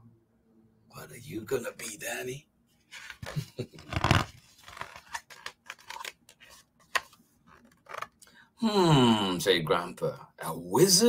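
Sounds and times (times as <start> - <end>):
book page turning: 2.9 - 8.2
person laughing: 3.2 - 4.2.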